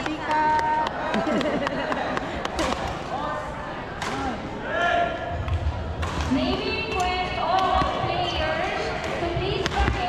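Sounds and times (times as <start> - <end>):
voices in a hall: 0.0 - 10.0
rackets striking shuttlecock: 5.4 - 10.0.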